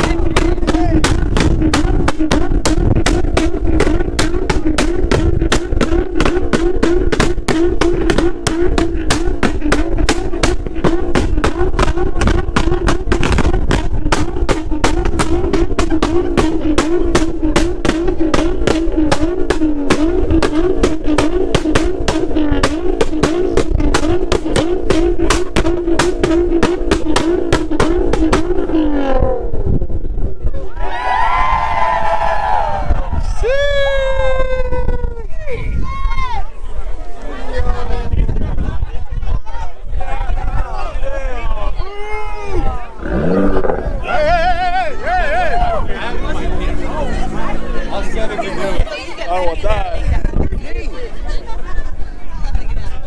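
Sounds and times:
car engine at high revs: 0.0s - 30.4s, 45.8s - 49.4s
sharp exhaust cracks: 0.0s - 30.4s.

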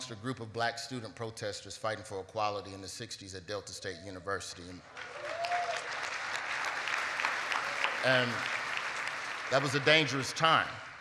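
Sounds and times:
crowd applause: 4.8s - 11.0s.

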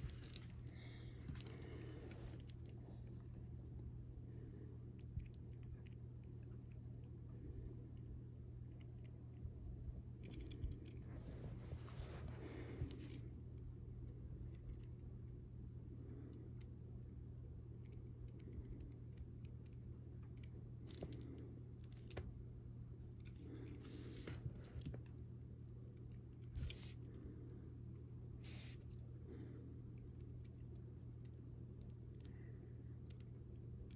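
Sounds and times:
steady low hum: 0.0s - 33.9s
soft rubbing: 10.9s - 13.2s.

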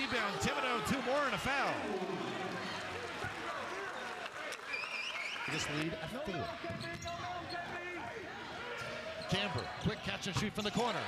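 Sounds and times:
crowd voices talking: 0.0s - 4.7s.

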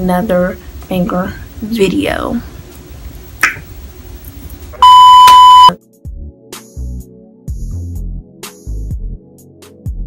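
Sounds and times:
electronic bleep tone: 4.8s - 5.8s.

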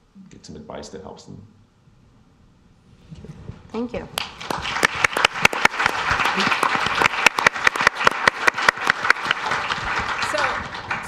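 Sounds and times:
crowd applauding: 4.2s - 11.0s.

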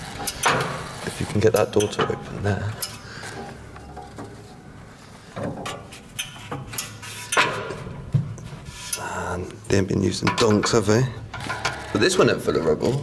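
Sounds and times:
metal door scraping: 4.0s - 9.1s, 10.1s - 13.0s.

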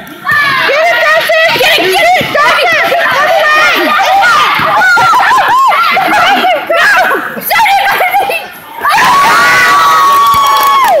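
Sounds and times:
crowd noise: 0.0s - 11.0s
high-pitched cheering scream: 3.1s - 6.1s, 8.8s - 11.0s.

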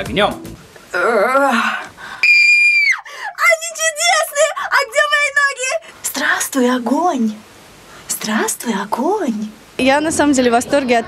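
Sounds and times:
woman screaming high: 2.2s - 4.4s.

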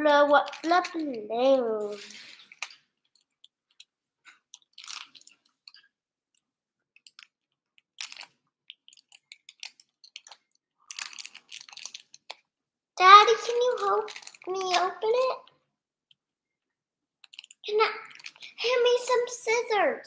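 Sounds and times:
plastic bag crinkling: 0.0s - 2.8s, 4.6s - 5.8s, 8.0s - 8.3s, 8.9s - 12.4s, 13.1s - 15.3s, 17.3s - 18.5s.

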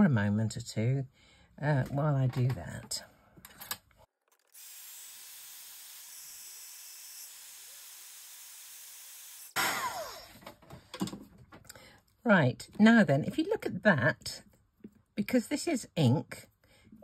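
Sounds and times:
heat tool blowing hot air: 4.6s - 10.2s.

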